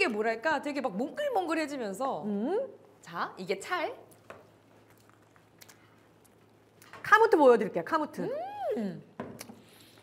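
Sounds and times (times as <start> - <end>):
person chewing: 4.6 - 6.9.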